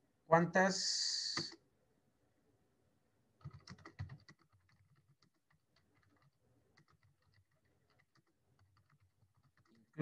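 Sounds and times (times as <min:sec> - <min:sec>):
faint keyboard typing: 0:01.3 - 0:01.6, 0:03.4 - 0:10.0.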